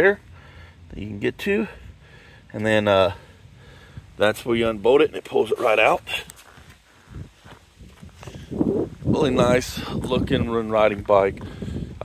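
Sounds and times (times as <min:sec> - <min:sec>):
soft handling rustles: 0:05.7 - 0:08.5.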